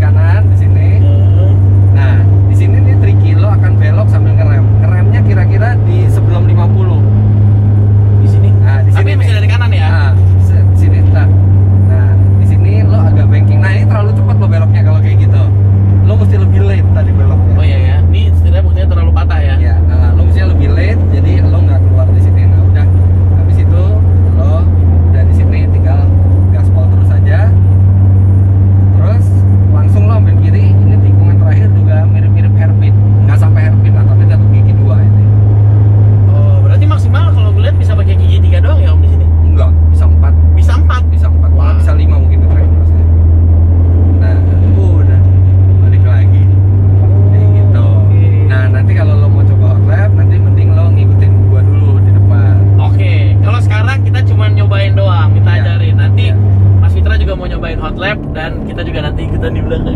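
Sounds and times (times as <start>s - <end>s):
car engine and road noise: 0.0s - 59.9s.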